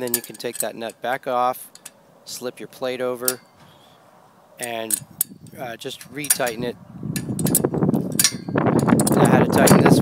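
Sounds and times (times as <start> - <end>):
wrench clinking on metal nut: 0.0 - 1.0, 4.6 - 5.4, 6.0 - 6.6, 7.2 - 10.0
rough handling noise: 0.0 - 10.0.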